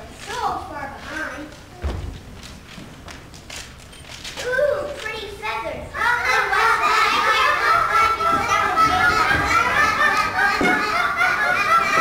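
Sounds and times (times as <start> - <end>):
young children's voices: 0.0 - 2.3, 4.2 - 12.0.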